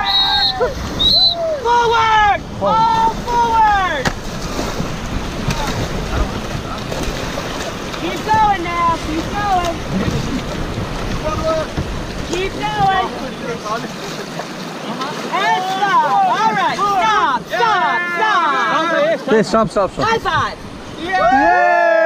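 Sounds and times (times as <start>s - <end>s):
voices calling out: 0.0s - 4.2s, 5.1s - 22.0s
wind rumbling on microphone: 0.0s - 13.6s
paddles digging into water: 0.0s - 18.4s
whitewater rapids rushing: 0.0s - 22.0s.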